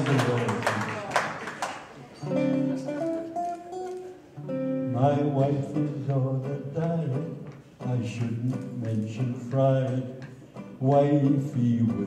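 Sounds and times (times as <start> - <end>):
acoustic guitar accompaniment: 0.0 - 12.0
old man singing: 4.9 - 12.0.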